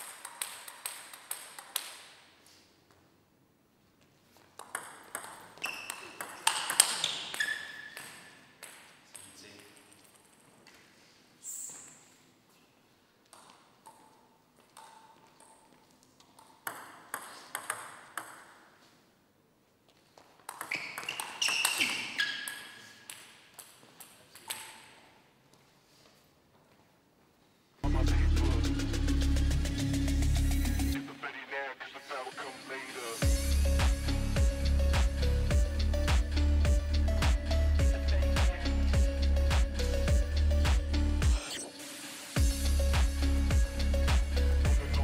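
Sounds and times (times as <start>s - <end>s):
table tennis ball pings: 4.6s - 9.4s, 16.4s - 18.7s, 20.5s - 23.7s.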